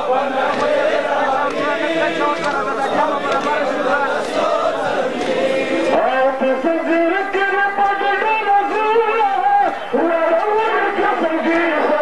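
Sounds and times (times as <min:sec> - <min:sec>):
men chanting in chorus: 0:00.0 - 0:12.0.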